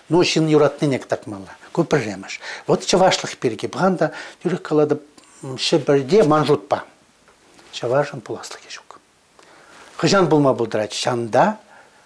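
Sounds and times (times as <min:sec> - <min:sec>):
man speaking: 0:00.0 - 0:07.0, 0:07.7 - 0:09.1, 0:10.0 - 0:11.7
faint breathing sounds: 0:02.4 - 0:02.7, 0:04.1 - 0:04.4, 0:09.3 - 0:10.0, 0:11.6 - 0:12.0.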